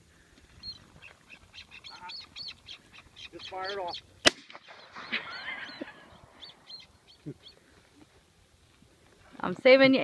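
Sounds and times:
gunshot: 0:04.2 - 0:05.1.

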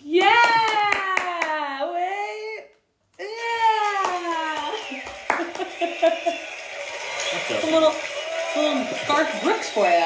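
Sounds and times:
woman talking: 0:07.5 - 0:10.0.

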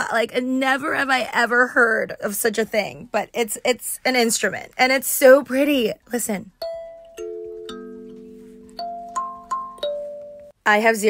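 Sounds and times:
kalimba notes: 0:06.6 - 0:10.6.

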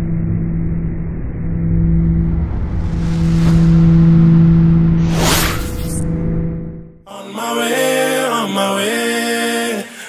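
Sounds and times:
low drone over rumble: 0:00.0 - 0:07.0
faint swish: 0:02.2 - 0:06.1.

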